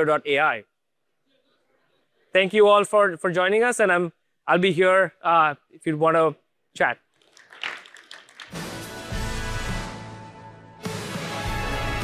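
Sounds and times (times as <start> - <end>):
audience clapping: 7.2 - 9.0
theme music: 8.5 - 12.0.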